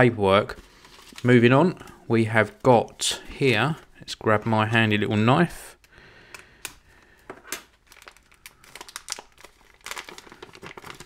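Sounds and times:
plastic bag crinkling: 7.6 - 11.0.

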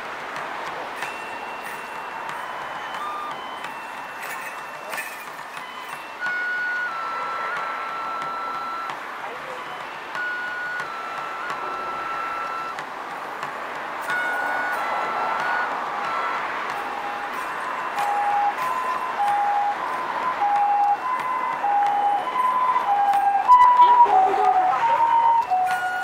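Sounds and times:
bamboo flute melody: 0.6 - 26.0.

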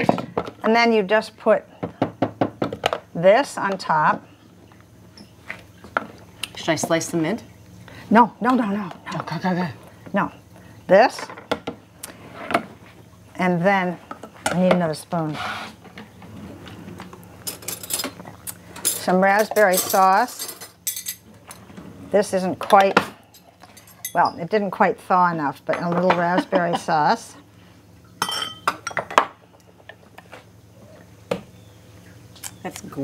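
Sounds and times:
metal spoon clinking on dishes: 18.8 - 21.2, 28.2 - 29.0.

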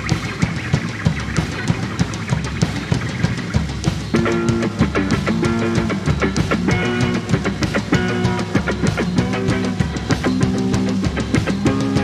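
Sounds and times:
drum kit fast beat: 0.0 - 12.0
electric guitars: 0.0 - 12.0.

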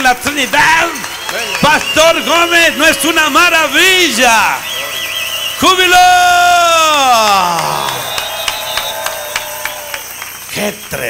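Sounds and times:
people clapping: 0.0 - 11.0
man shouting into microphone: 5.6 - 8.1.

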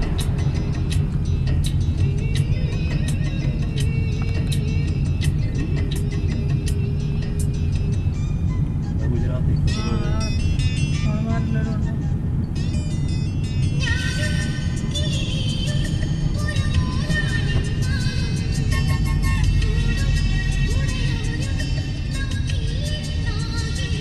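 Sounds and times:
music with beat and melody: 0.0 - 11.0, 11.7 - 24.0
vehicle rumble: 0.0 - 24.0.

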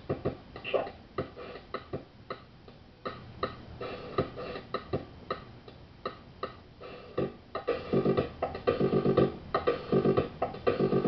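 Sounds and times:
drum machine clicky hits: 7.2 - 11.0.

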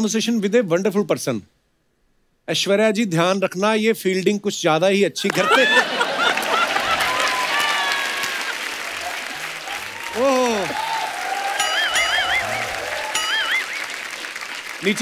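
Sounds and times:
man laughing loudly: 5.3 - 7.2
audience applauding and laughing: 5.3 - 15.0.

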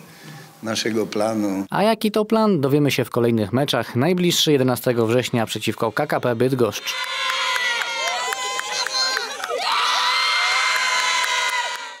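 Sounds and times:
women cheering and shouting: 6.8 - 12.0.

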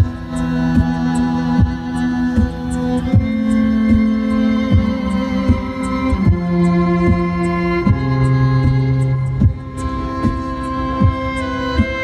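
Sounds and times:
electric violin and keyboard duet: 0.0 - 12.0
low beat thump: 0.0 - 12.0.

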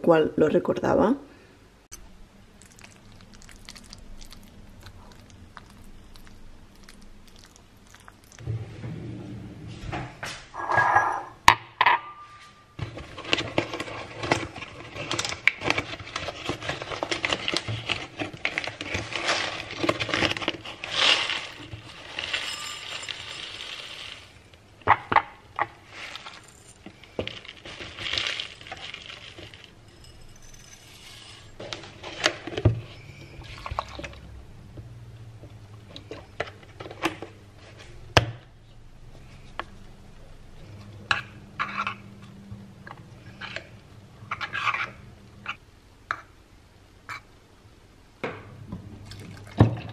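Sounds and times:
glass and ceramic bowl clinking: 10.6 - 12.6, 22.0 - 23.9.

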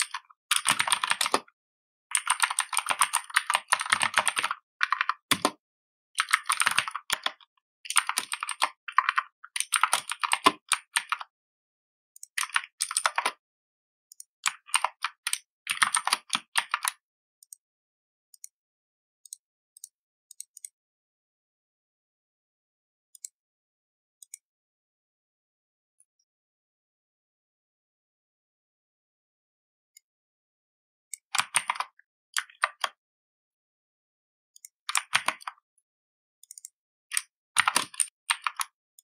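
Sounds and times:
typing on a computer keyboard: 0.0 - 1.5, 2.1 - 5.6, 6.2 - 11.3, 12.2 - 13.4, 14.1 - 17.6, 31.2 - 33.0, 34.6 - 35.6, 36.4 - 38.8.

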